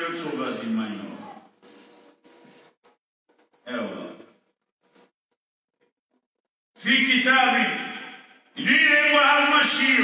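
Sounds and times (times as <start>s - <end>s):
man talking: 3.6s - 4.3s.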